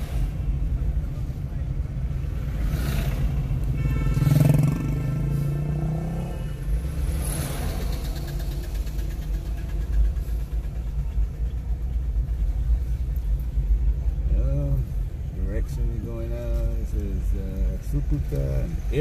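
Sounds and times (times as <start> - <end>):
car engine and tyres rumble: 0.0 - 19.0.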